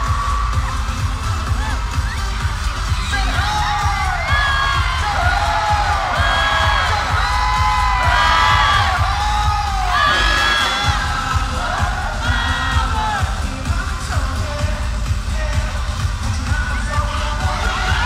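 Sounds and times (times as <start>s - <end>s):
crowd cheering and screaming: 0.0s - 18.0s
live pop music with thumping bass: 0.0s - 18.0s
crowd singing along: 3.3s - 18.0s.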